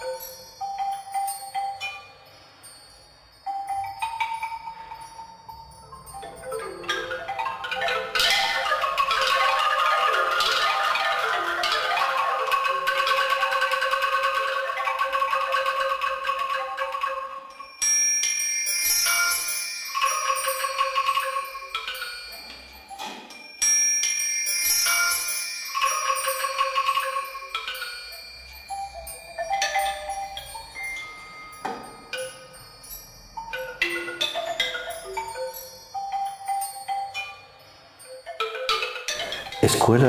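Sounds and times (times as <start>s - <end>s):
mallet percussion music: 0.0s - 40.0s.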